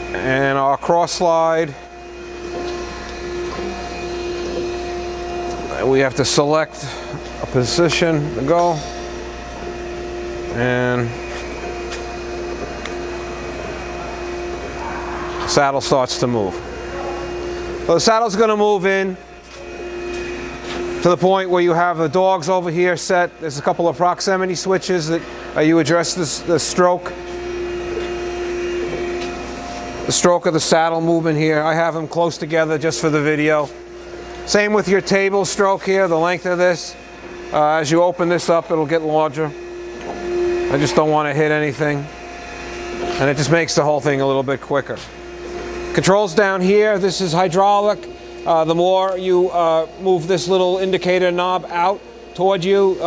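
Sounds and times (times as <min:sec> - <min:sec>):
grinder machine humming: 0:00.0 - 0:53.0.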